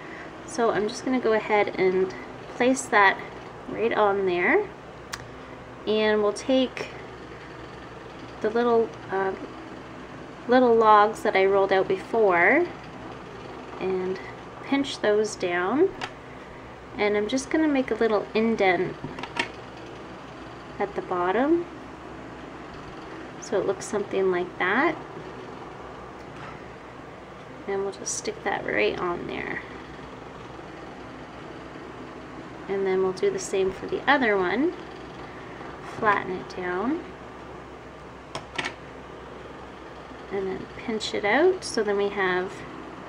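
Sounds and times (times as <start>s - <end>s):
low steady room hum: 0.0s - 43.0s
woman's voice: 0.5s - 4.7s, 5.9s - 7.0s, 8.4s - 9.4s, 10.5s - 12.8s, 13.8s - 16.0s, 17.0s - 19.0s, 20.8s - 21.7s, 23.4s - 25.0s, 27.7s - 29.7s, 32.7s - 34.8s, 35.9s - 37.1s, 40.3s - 42.6s.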